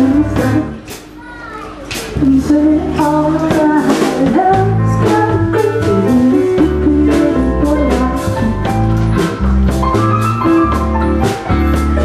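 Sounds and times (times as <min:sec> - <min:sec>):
live band with singer: 0:00.0 - 0:12.0.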